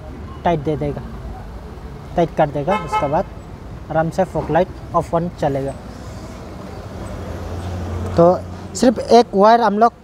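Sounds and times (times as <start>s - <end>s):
motor vehicle engine hum: 0.0s - 10.0s.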